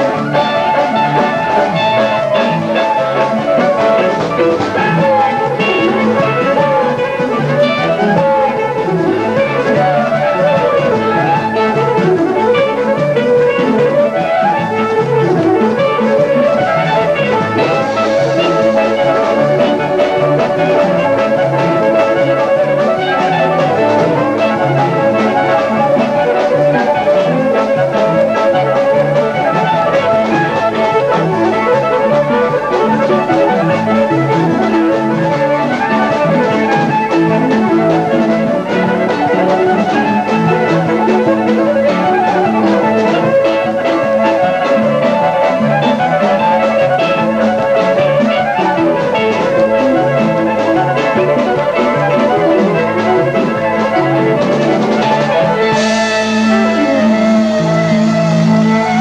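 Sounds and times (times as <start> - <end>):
folk band playing dance tune: 0.0 - 59.0
long high held note: 55.7 - 58.8.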